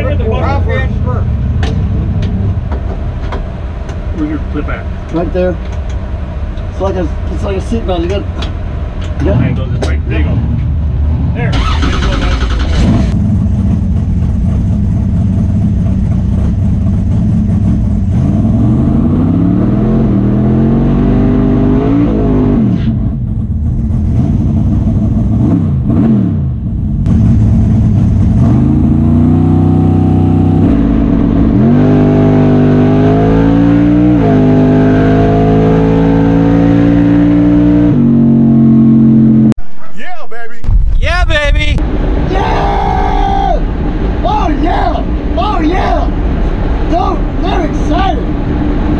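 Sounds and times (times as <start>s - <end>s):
race car engine revving: 9.0s - 39.6s.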